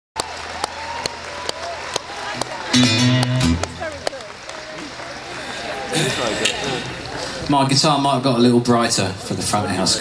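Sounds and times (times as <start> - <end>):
crowd voices: 0.2 - 10.0
electro-acoustic guitar chord: 2.7 - 3.8.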